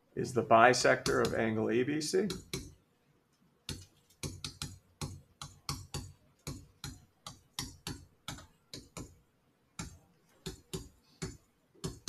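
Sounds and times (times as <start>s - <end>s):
stylus tapping on a screen: 0.9s - 1.5s, 2.2s - 2.8s, 3.6s - 12.0s.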